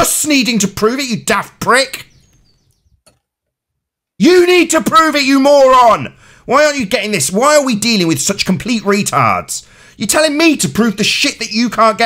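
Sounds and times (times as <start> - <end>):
person talking: 0.0 - 2.1, 4.2 - 12.0.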